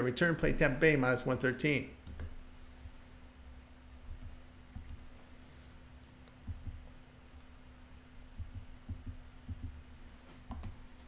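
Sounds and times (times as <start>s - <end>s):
steady low hum: 0.0s - 11.0s
soft low thumps: 4.0s - 5.2s, 6.4s - 7.1s, 8.2s - 10.8s.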